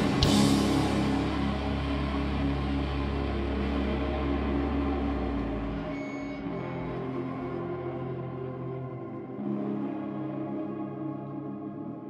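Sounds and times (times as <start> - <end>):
deep bass note: 0.0 - 6.8
ringing electric guitar chords: 0.0 - 11.7.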